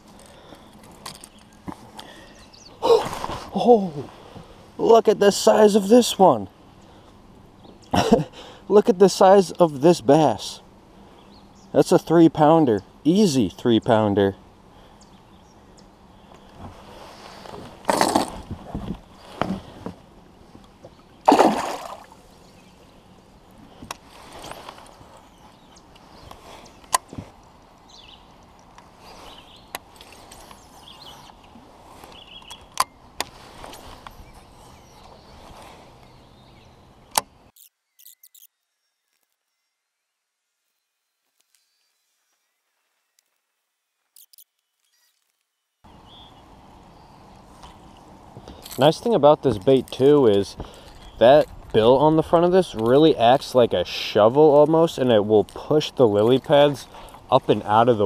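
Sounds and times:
water splashing: 0:21.2 - 0:22.2
fishing reel clicks: 0:37.6 - 0:38.5.

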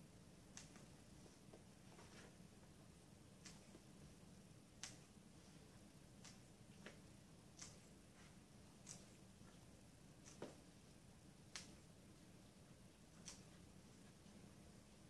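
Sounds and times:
low room hum: 0:00.0 - 0:15.0
beans snapping by hand: 0:00.5 - 0:00.9, 0:03.4 - 0:03.8, 0:04.8 - 0:05.1, 0:06.2 - 0:07.9, 0:08.8 - 0:09.2, 0:11.4 - 0:11.8, 0:13.2 - 0:13.6.

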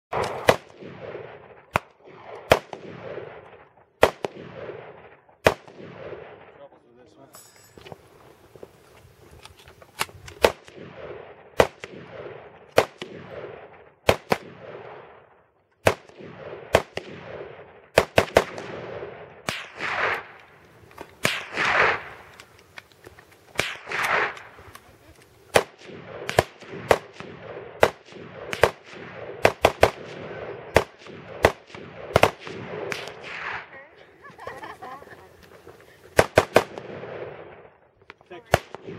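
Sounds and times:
rifle firing single shots: 0:00.1 - 0:06.7, 0:09.4 - 0:33.9, 0:35.7 - 0:38.9.

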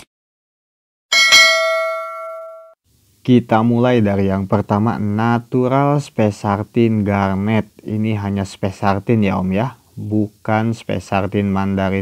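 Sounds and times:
bell-like chime ding: 0:01.1 - 0:02.8.

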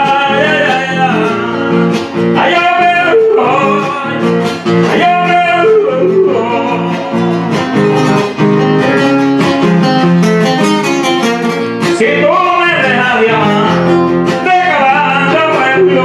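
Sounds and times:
man singing yodel-like: 0:00.0 - 0:07.3, 0:11.8 - 0:16.0
acoustic guitar: 0:00.0 - 0:16.0.

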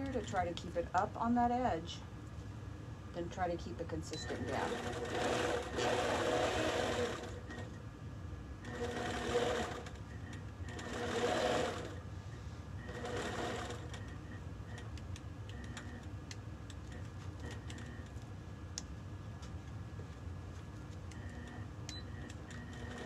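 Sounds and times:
quilting machine stitching: 0:04.2 - 0:07.7, 0:08.6 - 0:10.0, 0:10.7 - 0:12.0, 0:12.9 - 0:14.0, 0:22.5 - 0:23.0.

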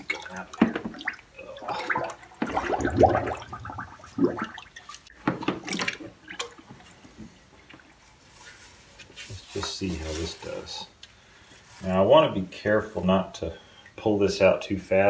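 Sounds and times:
liquid sloshing and dripping in tub: 0:00.0 - 0:08.6.

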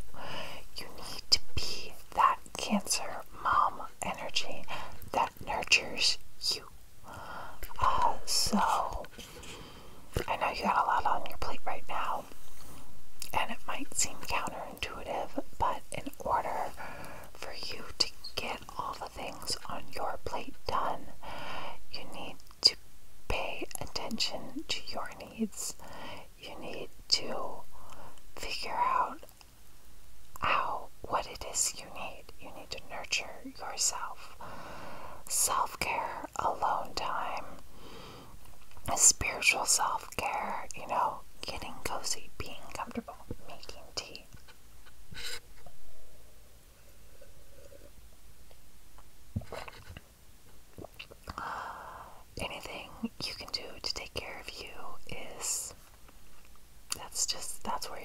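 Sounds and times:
woman whispering: 0:00.1 - 0:09.2, 0:10.2 - 0:12.4, 0:13.2 - 0:29.4, 0:30.4 - 0:34.4, 0:35.2 - 0:37.6, 0:38.8 - 0:44.3, 0:52.3 - 0:55.8, 0:56.9 - 0:58.0.

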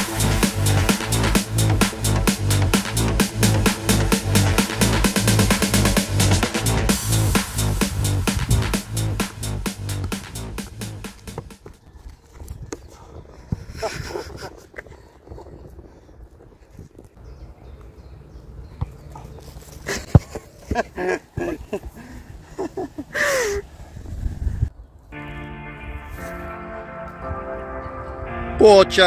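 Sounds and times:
background music: 0:00.0 - 0:11.4, 0:25.2 - 0:29.0.

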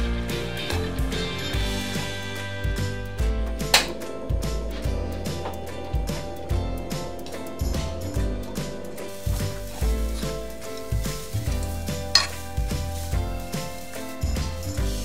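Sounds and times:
music with steady low beat: 0:00.0 - 0:15.0
squid sizzling in a frying pan: 0:09.0 - 0:15.0
utensil clinking against pan: 0:11.5 - 0:12.5.

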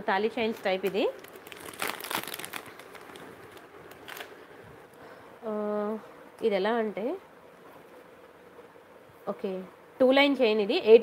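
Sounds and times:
plastic packets crinkling: 0:00.4 - 0:04.6.

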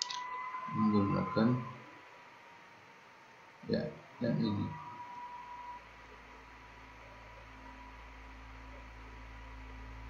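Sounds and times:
faint high tone: 0:00.0 - 0:01.9
faint electrical hum with hiss: 0:00.0 - 0:10.0.

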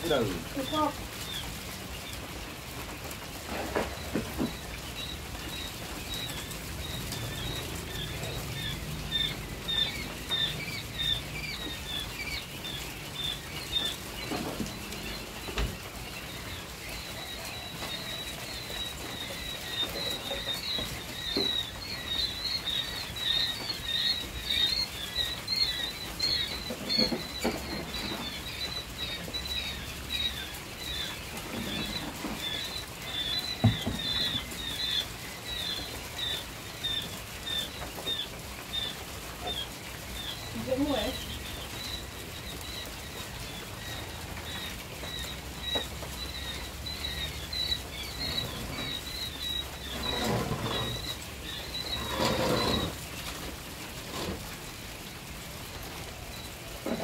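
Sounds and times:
quail chicks peeping: 0:00.0 - 0:57.0.

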